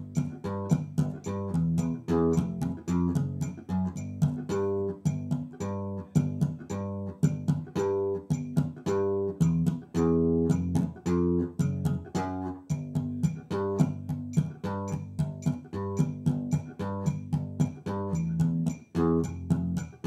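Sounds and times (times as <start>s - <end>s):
slap bass guitar octave pattern: 0.0s - 20.0s.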